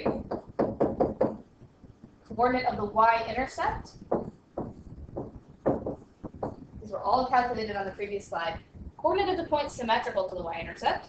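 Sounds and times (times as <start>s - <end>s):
stylus tapping on tablet: 0.0s - 2.4s, 3.7s - 6.8s.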